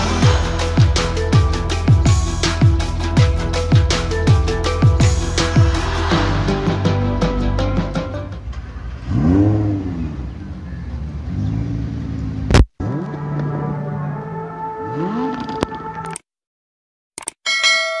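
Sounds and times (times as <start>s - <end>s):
car engine revving: 0.0s - 2.2s, 3.5s - 15.9s
sharp click: 17.2s - 17.4s.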